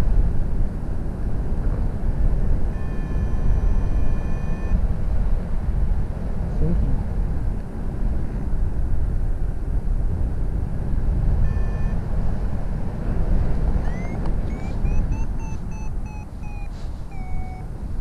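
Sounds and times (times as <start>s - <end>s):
steady electronic tone: 2.8s - 4.8s, 11.4s - 12.0s, 13.8s - 17.7s.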